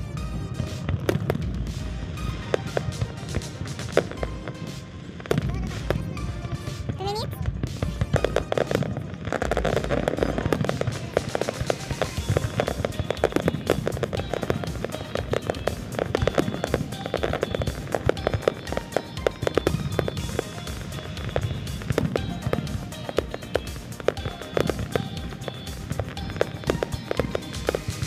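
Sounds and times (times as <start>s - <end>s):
fireworks bangs and crackles: 0.0s - 28.0s.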